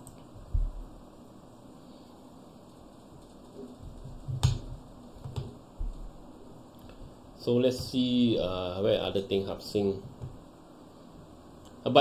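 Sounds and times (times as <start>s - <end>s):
soft low thuds: 0.4s - 1.0s.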